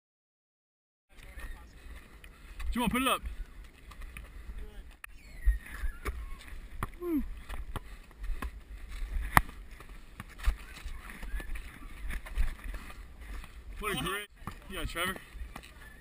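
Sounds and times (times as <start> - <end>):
players' voices: 1.1 - 5.0, 9.4 - 16.0
footsteps on court: 5.7 - 16.0.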